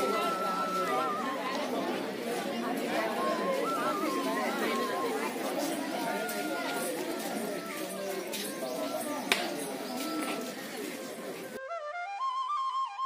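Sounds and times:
crowd chatter: 0:00.0 - 0:12.2.

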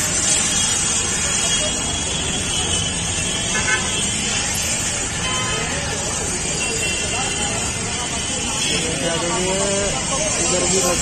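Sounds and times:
people's voices: 0:00.0 - 0:11.0
traffic: 0:00.0 - 0:11.0
vehicle horn toot: 0:01.5 - 0:04.1.

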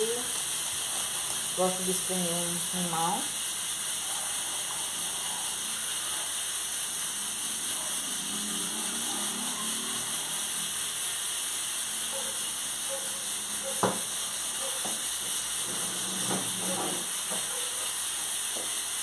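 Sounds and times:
steam hissing: 0:00.0 - 0:19.0.

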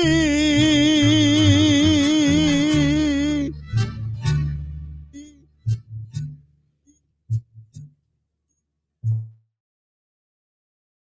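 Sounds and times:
walking bass notes: 0:00.0 - 0:06.6, 0:07.3 - 0:08.0.

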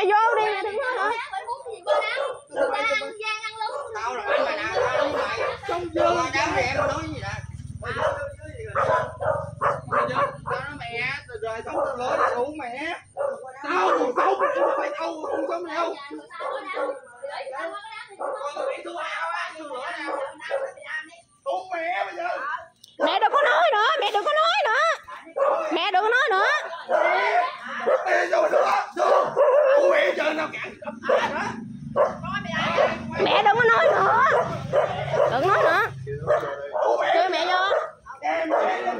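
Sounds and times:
dog barking: 0:00.0 - 0:10.9, 0:11.6 - 0:17.4, 0:18.0 - 0:19.1, 0:19.8 - 0:20.9, 0:22.9 - 0:38.9
people arguing loudly: 0:00.0 - 0:38.9.

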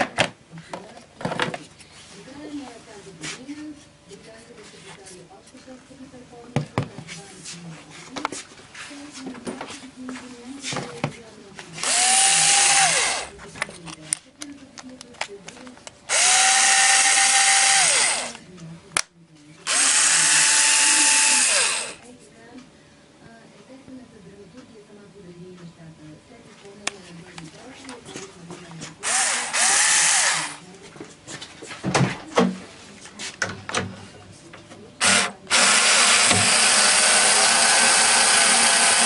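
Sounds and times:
cordless screwdriver motor whining: 0:11.8 - 0:13.3, 0:16.1 - 0:18.4, 0:19.7 - 0:22.0, 0:29.0 - 0:30.6, 0:35.0 - 0:39.0.

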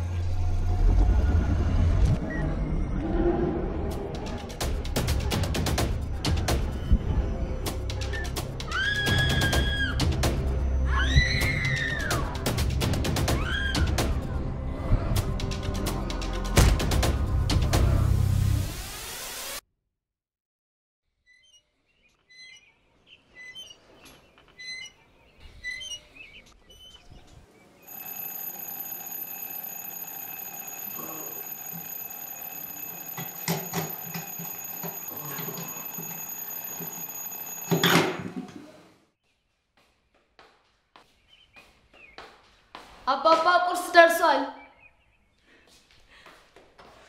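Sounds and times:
alarm clock ringing: 0:27.8 - 0:38.3.

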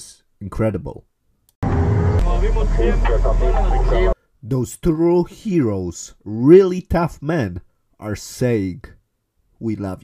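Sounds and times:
low vehicle rumble: 0:01.6 - 0:04.2
men's voices: 0:02.1 - 0:06.1.

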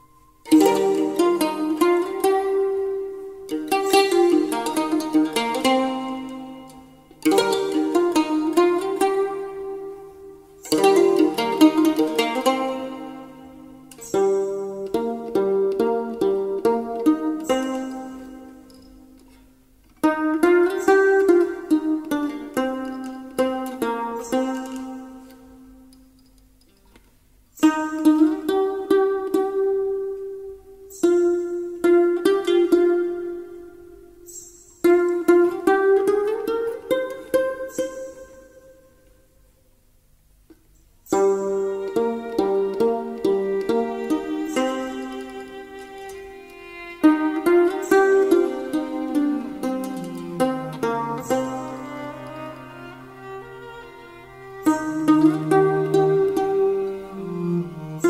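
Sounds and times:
plucked string instrument music: 0:00.0 - 0:58.0.

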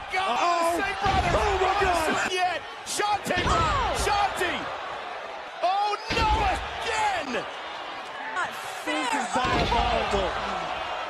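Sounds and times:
voices shouting: 0:00.0 - 0:11.0.

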